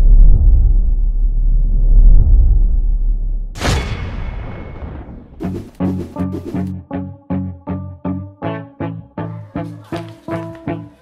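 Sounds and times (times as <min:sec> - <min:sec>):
deep cinematic rumble: 0:00.0 - 0:03.6.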